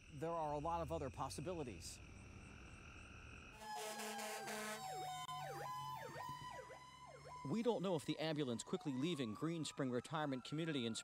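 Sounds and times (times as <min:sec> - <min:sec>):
fire engine horn: 0:03.6 - 0:06.6
siren wail: 0:03.6 - 0:11.0
yelping siren: 0:03.6 - 0:11.0.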